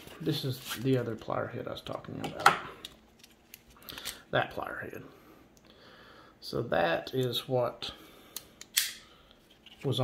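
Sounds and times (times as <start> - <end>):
person speaking: 0.0 - 3.0, 3.9 - 5.2, 9.7 - 10.0.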